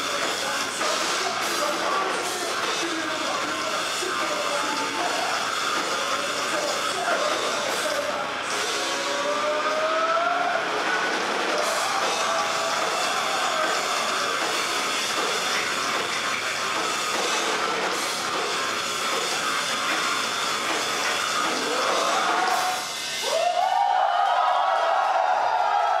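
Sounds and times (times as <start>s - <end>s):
heavy rock band playing: 0.0s - 24.1s.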